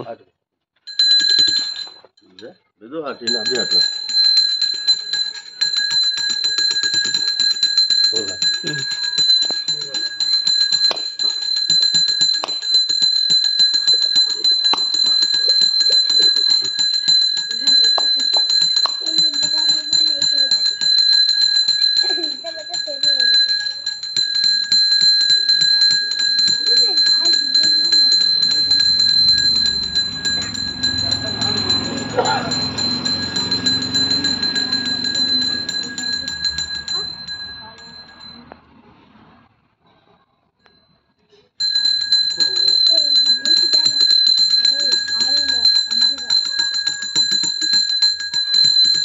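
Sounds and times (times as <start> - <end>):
hand bell ringing rapidly: 0.9 - 2.1, 3.1 - 38.5, 41.6 - 49.0.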